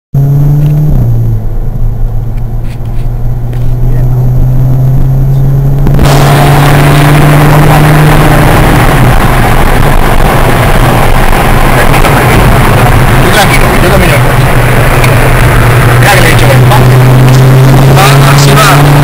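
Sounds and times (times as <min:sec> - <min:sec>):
vehicle engine droning: 0:00.2 - 0:19.0.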